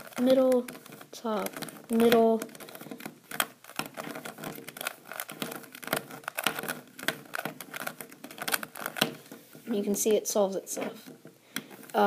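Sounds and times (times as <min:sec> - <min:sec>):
puzzle cube plastic clicks: 0:00.0 - 0:10.2, 0:11.0 - 0:12.0.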